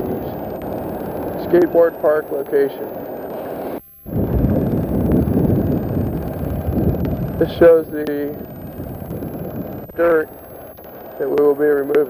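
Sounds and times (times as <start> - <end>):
wind buffeting microphone: 0.0 - 2.0, 3.0 - 11.5.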